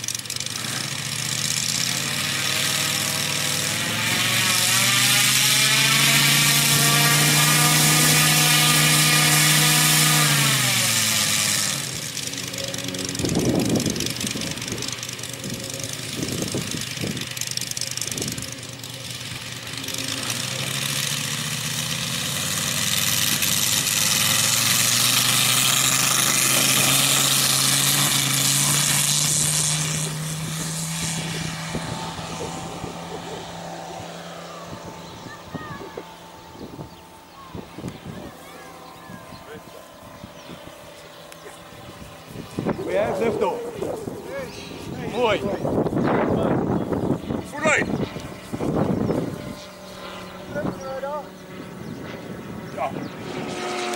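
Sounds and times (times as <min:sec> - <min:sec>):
model airplane radial engine: 0:00.0 - 0:53.9.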